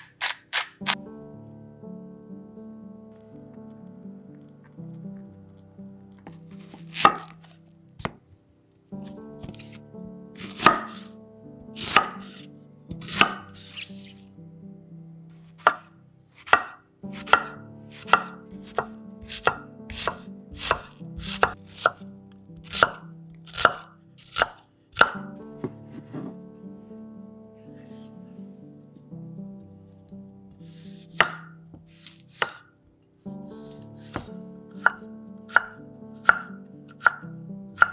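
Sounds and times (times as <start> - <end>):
knife chopping on wooden board: 6.7 - 7.4, 10.4 - 11.1, 11.8 - 12.4, 13.0 - 13.5, 15.6 - 15.9, 16.5 - 22.0, 22.6 - 26.4, 31.1 - 31.5, 32.1 - 32.6, 33.7 - 37.2.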